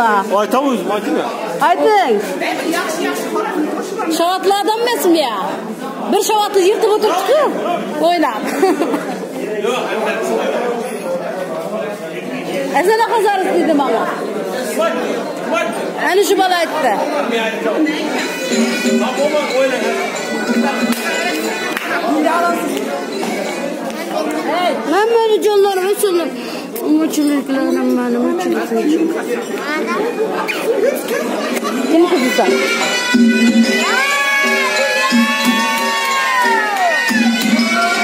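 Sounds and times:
indistinct chatter in echoing hall: 0.0 - 38.0.

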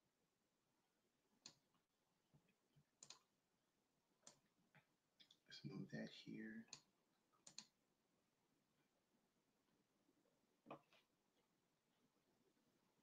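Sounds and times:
computer mouse clicks: 1.4 - 1.6, 3.0 - 3.3, 4.2 - 4.4, 6.7 - 7.8.

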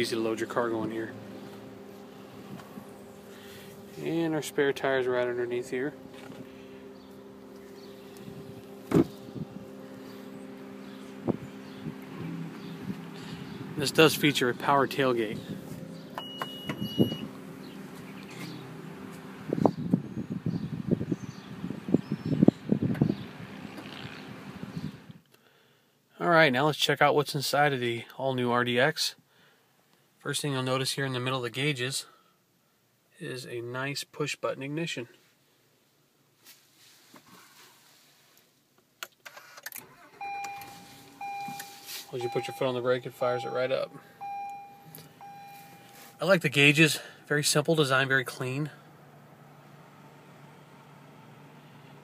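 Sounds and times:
tailgate motor hum: 0.0 - 21.4, 39.6 - 46.2
car engine starting and running: 0.0 - 25.3, 39.0 - 52.0
short high beep: 40.2 - 46.2.

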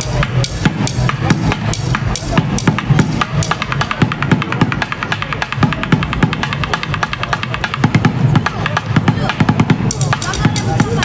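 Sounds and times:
sticks drumming on plastic bucket: 0.1 - 11.0.

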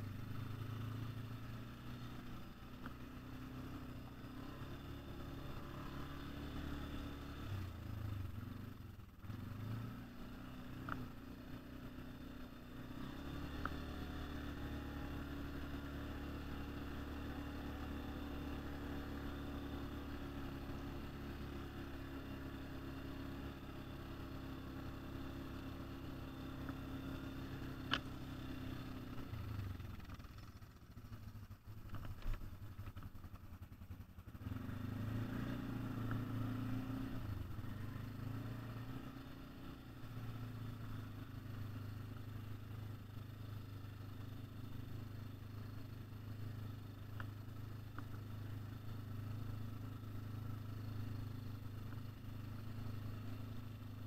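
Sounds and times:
atv engine running: 0.0 - 54.0.

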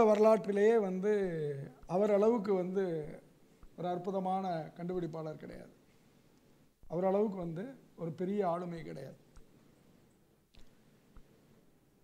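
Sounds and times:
faint clicks: 3.6 - 3.8, 8.8 - 11.4.

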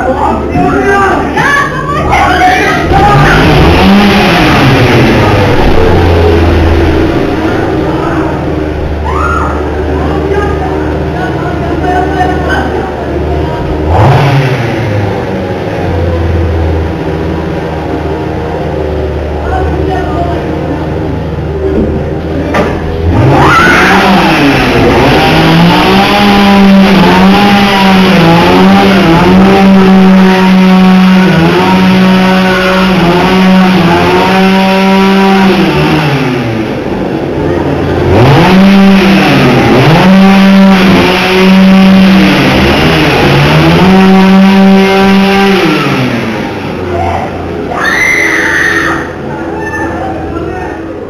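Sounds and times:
small engine revving: 0.8 - 18.2, 22.8 - 49.2.

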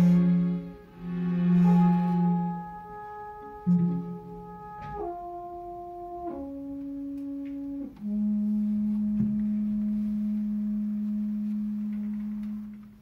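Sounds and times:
french horn playing: 0.0 - 13.0.

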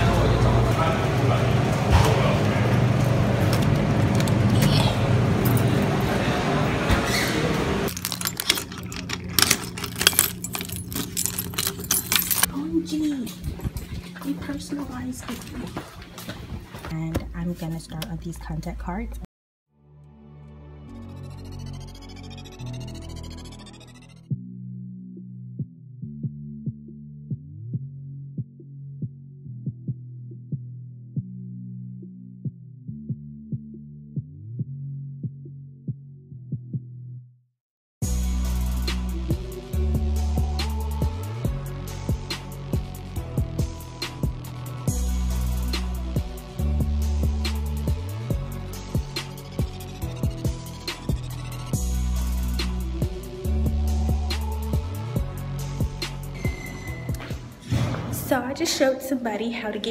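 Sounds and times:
key clicking in lock: 7.9 - 12.5
keys jangling: 7.9 - 12.5, 13.3 - 14.4
muffled bass music: 38.0 - 56.5.

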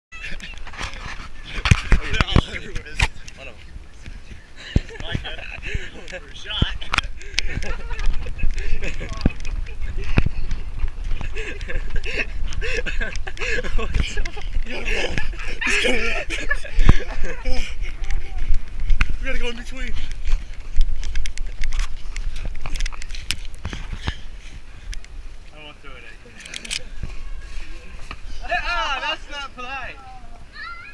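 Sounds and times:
wind rumble on microphone: 3.8 - 25.4.

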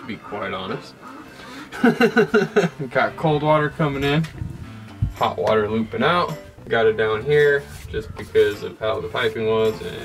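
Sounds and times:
man chuckling: 1.5 - 2.8.

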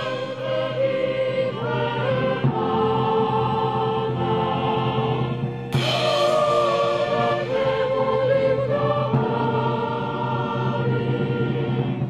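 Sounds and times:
low vocal drone: 0.0 - 12.0
mixed choir singing: 0.0 - 12.0.

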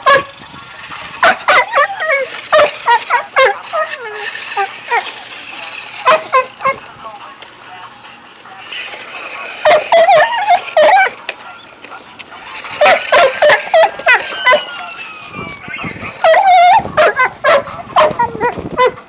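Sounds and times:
dog barking and yipping: 0.0 - 0.4, 1.0 - 6.8, 9.6 - 11.2, 12.4 - 15.0, 16.0 - 19.0.

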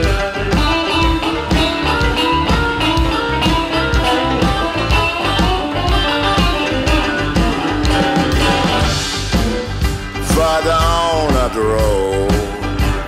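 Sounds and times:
electric guitar lines: 0.0 - 13.0
steady drum beat: 0.0 - 13.0.

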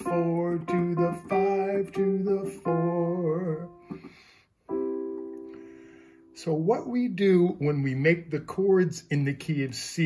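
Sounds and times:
digital piano chord: 0.0 - 6.7.

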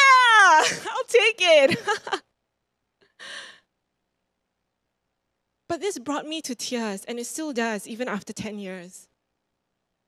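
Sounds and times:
woman sighing: 3.2 - 3.6.

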